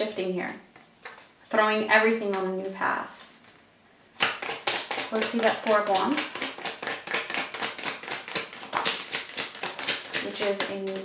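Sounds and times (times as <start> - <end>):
cards shuffling clicks: 0.8 - 1.5, 4.2 - 11.0.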